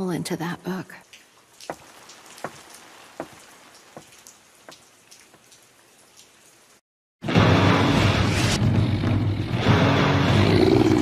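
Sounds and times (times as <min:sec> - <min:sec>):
light rain falling: 0:00.0 - 0:06.8
raindrops splashing: 0:00.9 - 0:06.8.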